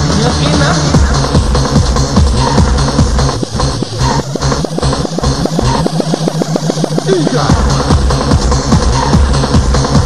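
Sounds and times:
rave dance music: 0.0s - 10.0s
rapid sharp drum hits: 1.4s - 10.0s.

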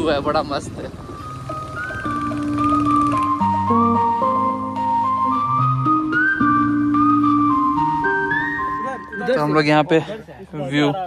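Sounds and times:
melody of held notes: 0.0s - 10.9s.

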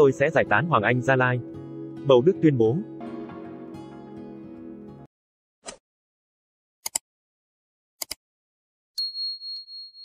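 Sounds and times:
double mouse click: 8.0s - 8.2s.

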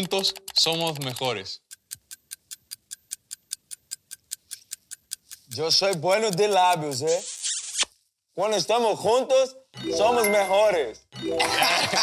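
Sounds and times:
evenly spaced ticking: 0.0s - 7.1s, 9.8s - 12.0s.

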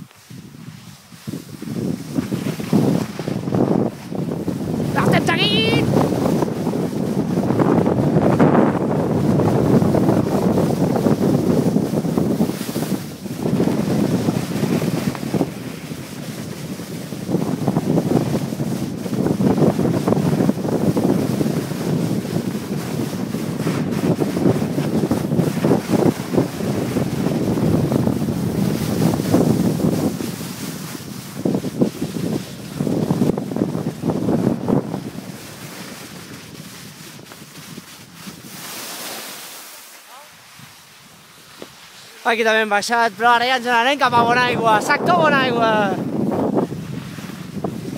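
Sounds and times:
wind buffeting microphone: 0.0s - 39.4s, 40.4s - 47.9s.

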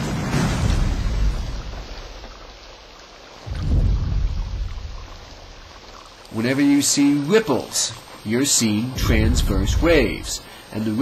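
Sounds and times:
low hiss: 0.0s - 11.0s
deep rumble: 3.4s - 6.1s, 9.0s - 10.5s.

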